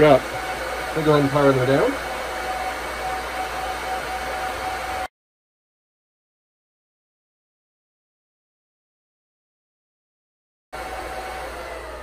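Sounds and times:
server cooling fans running: 0:00.0 - 0:05.1, 0:10.8 - 0:12.0.

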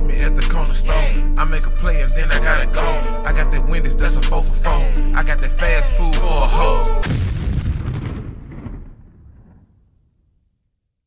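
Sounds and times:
music: 0:00.0 - 0:07.1
explosion boom and rumble: 0:07.0 - 0:10.6.

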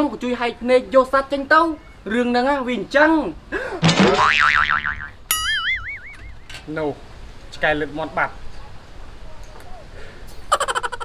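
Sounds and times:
springy boing: 0:03.9 - 0:06.5
wobbling upward sweep: 0:04.1 - 0:06.5.

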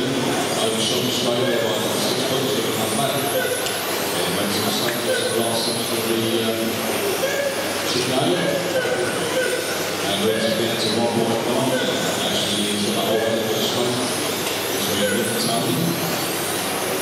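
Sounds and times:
electric motors whining: 0:00.0 - 0:17.0
indistinct voices: 0:00.0 - 0:17.0
tyre and hall noise: 0:00.0 - 0:17.0.

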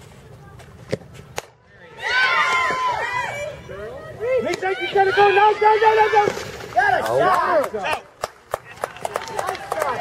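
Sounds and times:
spectators yelling and cheering: 0:01.8 - 0:08.0.

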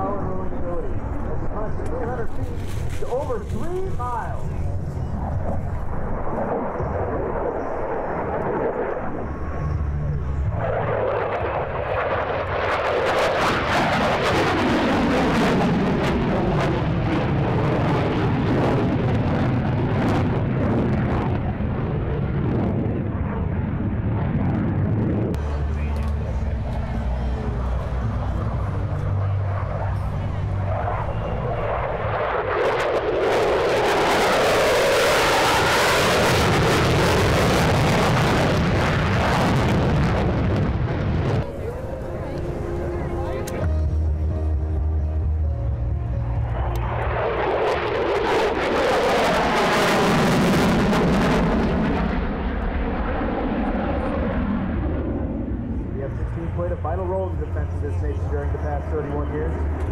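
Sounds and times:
fighter jet engine: 0:00.0 - 0:59.9
jet afterburner roar: 0:00.0 - 0:59.9.

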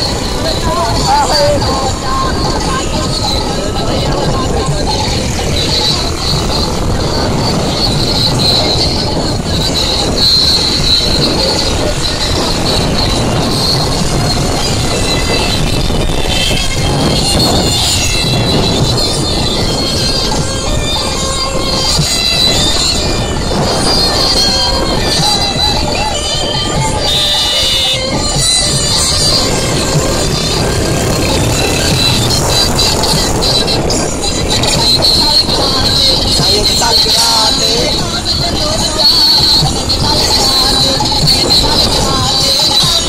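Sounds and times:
loud distorted music: 0:00.0 - 0:43.0
vehicle noise: 0:00.0 - 0:43.0
voices: 0:00.0 - 0:43.0.

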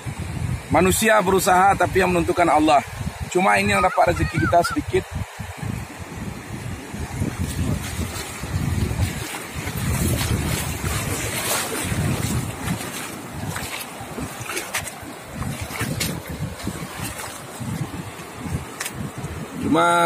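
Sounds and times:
small waves washing on beach: 0:00.0 - 0:20.0
wind buffeting microphone: 0:00.0 - 0:20.0.

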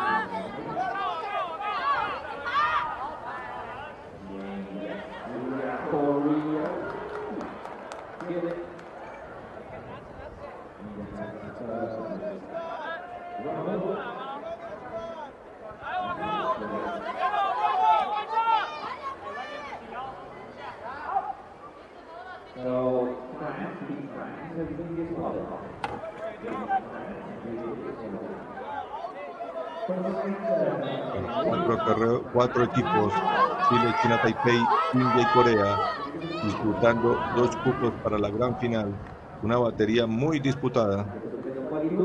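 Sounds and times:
overlapping chatter: 0:00.0 - 0:42.0
man speaking: 0:29.9 - 0:42.0.

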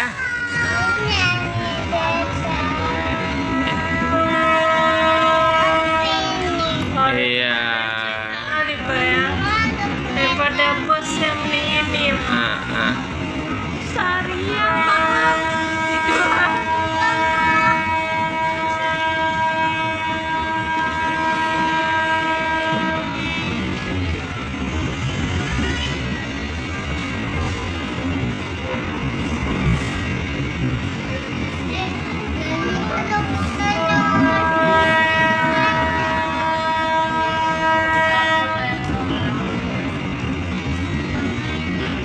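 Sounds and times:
train rumbling on rails: 0:00.0 - 0:42.0
train horn blast: 0:02.3 - 0:07.0, 0:11.0 - 0:30.3, 0:32.9 - 0:42.0.

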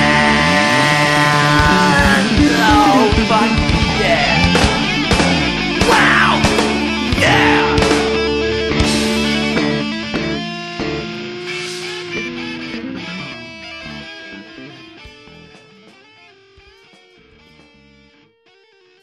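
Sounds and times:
punk rock band playing: 0:00.0 - 0:17.8
sharp drum hits: 0:04.4 - 0:09.6.

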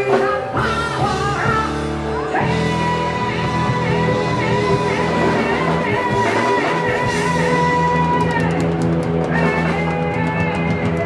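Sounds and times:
heavy metal band playing: 0:00.0 - 0:11.0.

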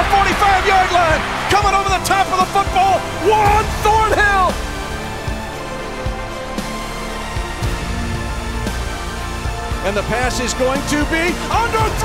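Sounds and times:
excited sports commentator: 0:00.0 - 0:04.6, 0:09.8 - 0:12.0
background music with steady beat: 0:00.0 - 0:12.0.

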